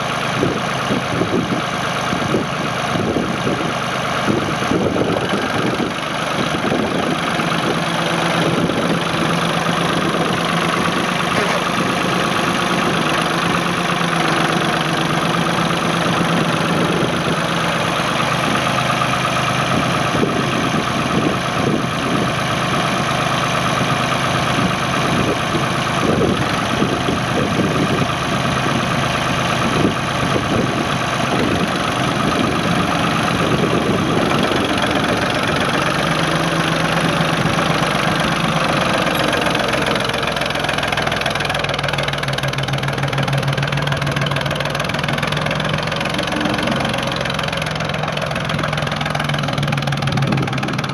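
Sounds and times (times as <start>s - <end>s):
tractor diesel engine clattering: 0.0s - 50.9s.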